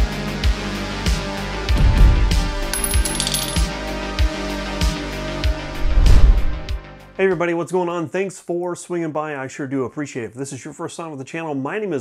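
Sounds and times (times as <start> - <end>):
metallic clinks: 2.6 - 3.7.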